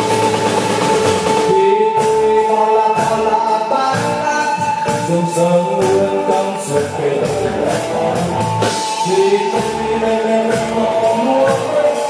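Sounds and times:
drums: 0.0 - 12.0
live band held note: 0.0 - 12.0.

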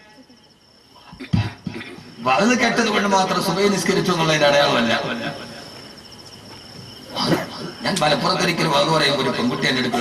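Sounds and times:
insects chirping: 0.0 - 10.0
man coughing into microphone: 1.1 - 2.2, 7.1 - 7.9
man talking: 7.8 - 10.0.

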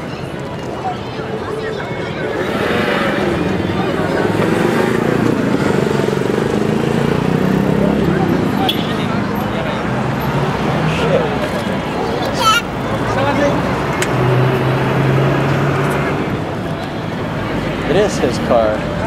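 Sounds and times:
street crowd chatter: 0.0 - 19.0.

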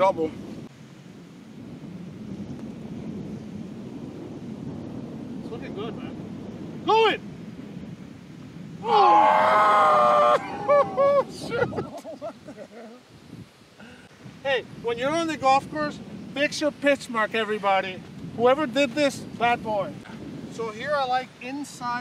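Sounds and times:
wind on microphone: 0.0 - 22.0
man shouting excitedly: 6.9 - 7.2, 8.8 - 11.8.

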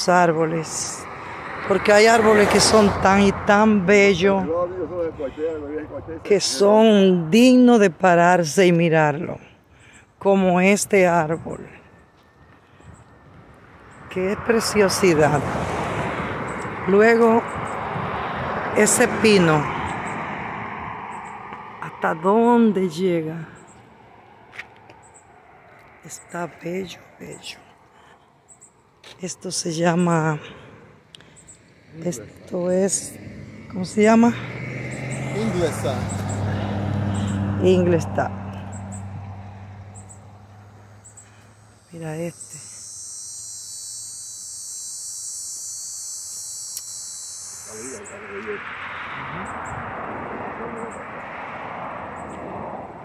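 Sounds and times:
cicadas buzzing: 0.0 - 53.0
vehicle road noise hiss: 34.4 - 37.6.

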